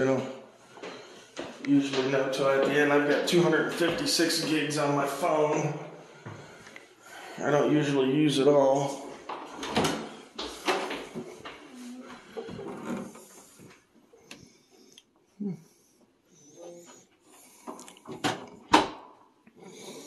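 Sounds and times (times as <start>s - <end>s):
door opening: 9.4s - 11.0s.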